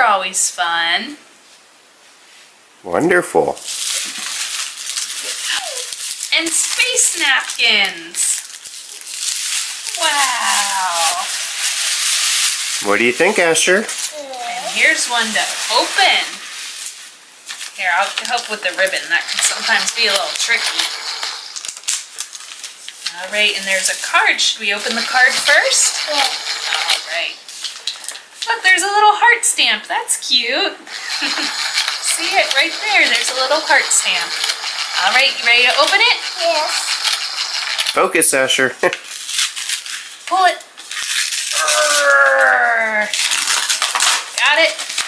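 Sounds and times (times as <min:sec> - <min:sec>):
paper envelope tearing: 0:03.6 - 0:28.2, 0:30.9 - 0:45.0
gift wrapping rustling and crinkling: 0:03.6 - 0:29.8, 0:30.4 - 0:45.0
person's long falling exclamation: 0:41.5 - 0:43.1.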